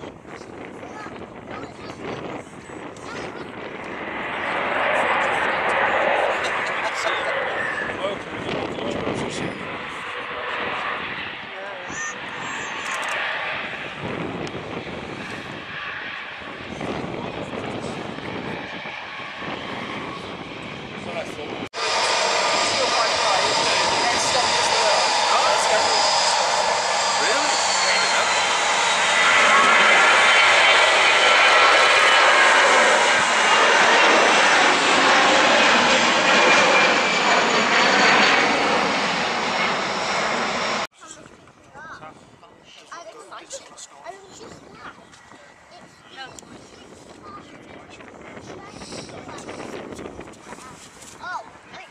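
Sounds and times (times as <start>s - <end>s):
jet engine noise: 0.0s - 51.9s.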